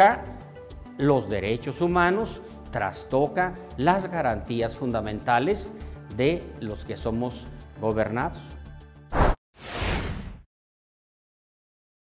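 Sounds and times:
rushing whoosh: 9.1s - 10.4s
sharp swish: 9.1s - 10.4s.

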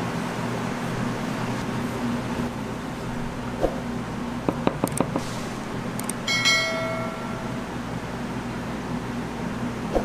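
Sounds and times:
fan-like hum: 0.0s - 10.0s
metallic notification ding: 6.3s - 7.7s.

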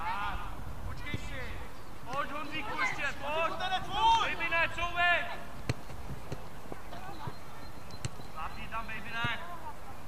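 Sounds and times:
foot kicking football: 5.6s - 8.3s.

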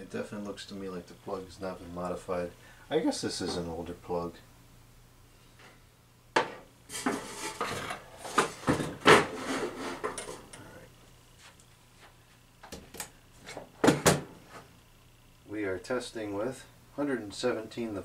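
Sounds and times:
metal fixture scraping on wood: 6.9s - 10.4s.

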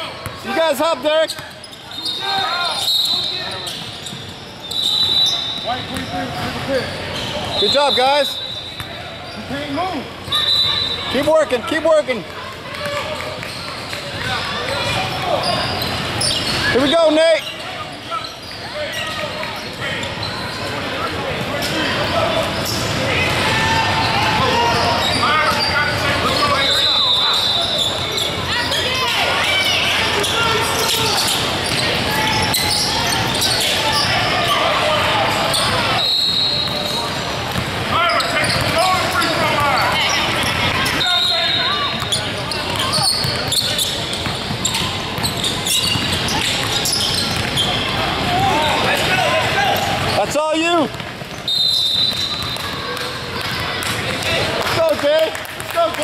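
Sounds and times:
sneaker squeaks: 0.0s - 54.3s.

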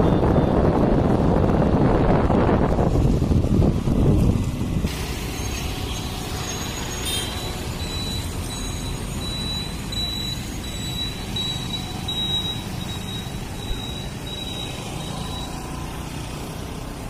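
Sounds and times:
motor scooters driving past: 9.3s - 17.0s.

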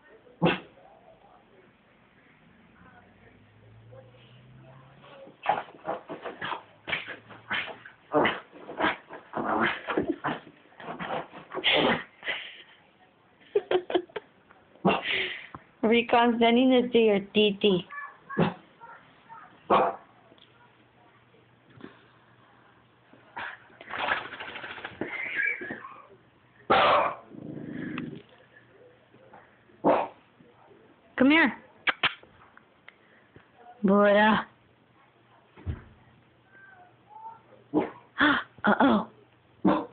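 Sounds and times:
dog growling: 7.1s - 12.0s, 27.0s - 28.4s
small dog barking: 19.7s - 20.1s, 26.7s - 27.3s, 39.6s - 39.9s.

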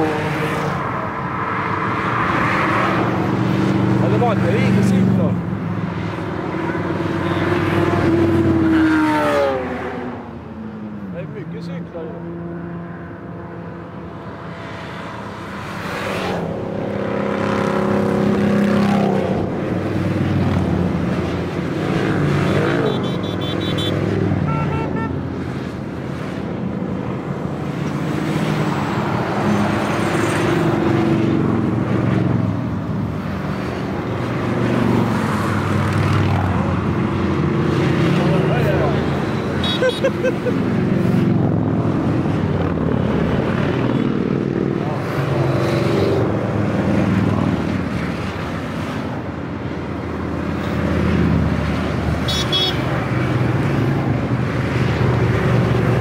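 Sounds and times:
car passing: 0.0s - 49.1s
motorcycles passing: 0.0s - 56.0s.

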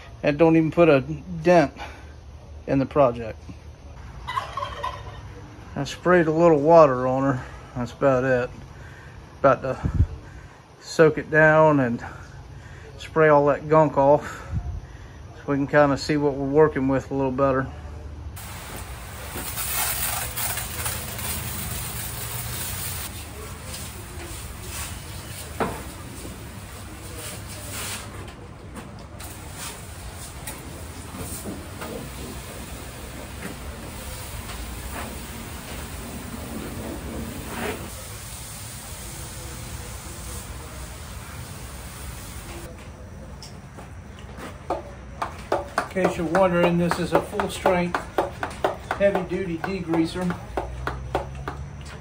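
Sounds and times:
pressure washer spray hissing: 18.4s - 28.2s, 29.2s - 42.7s.

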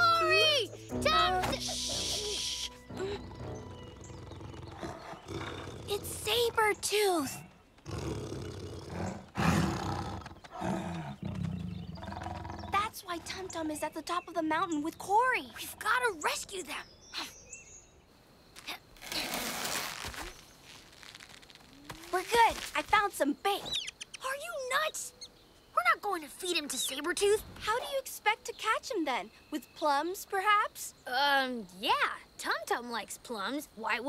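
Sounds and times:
child's voice: 0.0s - 3.2s, 5.9s - 7.4s, 12.7s - 17.3s, 22.0s - 25.1s, 25.8s - 34.0s
leaves and brush rustling: 18.4s - 23.6s.

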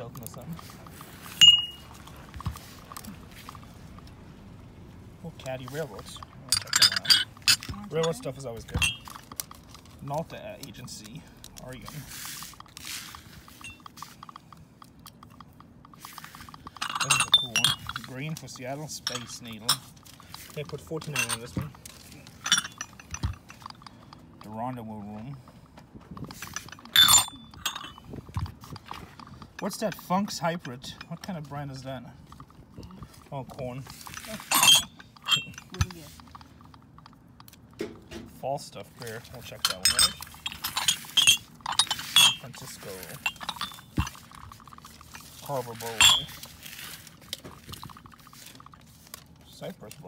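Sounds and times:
glass ashtrays handled on leather: 5.4s - 14.5s, 15.1s - 30.8s, 31.8s - 36.4s, 39.1s - 49.3s
brushing rustles: 11.8s - 14.3s.

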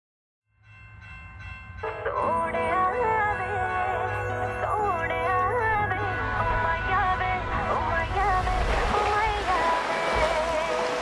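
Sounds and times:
person singing: 1.9s - 11.0s
train rumbling: 4.6s - 11.0s.

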